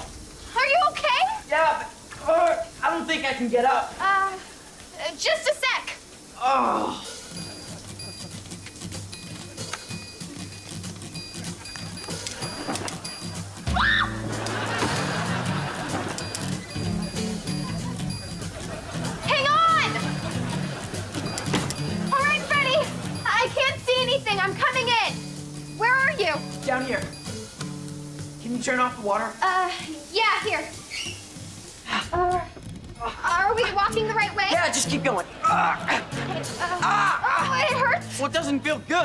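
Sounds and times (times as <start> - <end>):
girl's nervous wordless vocalizing: 6.4 - 7.2
comedic background music: 6.4 - 39.0.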